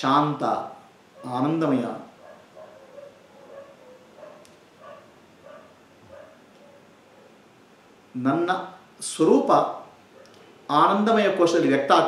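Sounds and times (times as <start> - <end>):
dog barking faintly: 1.2 - 7.5.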